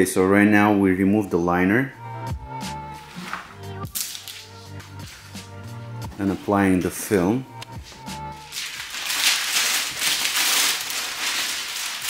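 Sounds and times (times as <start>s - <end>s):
background music: 0.0s - 12.0s
plastic film crinkling: 3.1s - 5.3s, 8.4s - 12.0s.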